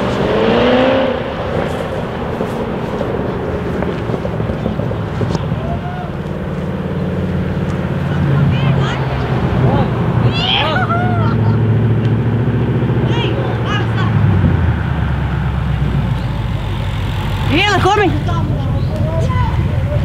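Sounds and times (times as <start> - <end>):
car engine running at low revs: 0.0 - 20.0.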